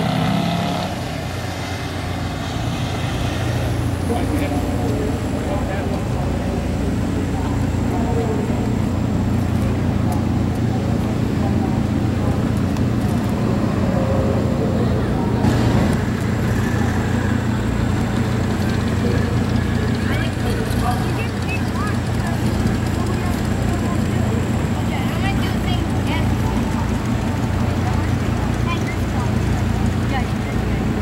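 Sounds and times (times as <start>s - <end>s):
indistinct voices talking: 0.9s - 31.0s.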